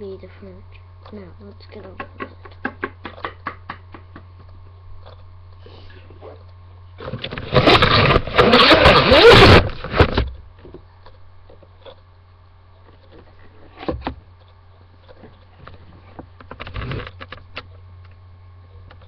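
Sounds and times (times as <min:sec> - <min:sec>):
steady low hum: 0:00.0 - 0:19.0
rubbing and scraping on microphone: 0:07.0 - 0:10.3, 0:12.9 - 0:17.6.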